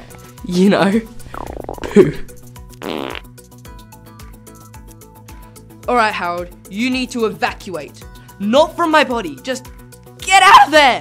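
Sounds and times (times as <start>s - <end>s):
upbeat background music: 0.0s - 11.0s
comic fart sound: 1.3s - 3.3s.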